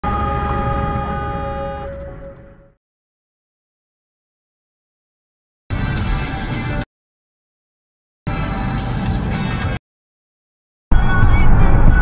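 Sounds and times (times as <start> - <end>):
vehicle horn: 0.0 - 2.8
road noise rumble: 8.3 - 9.8.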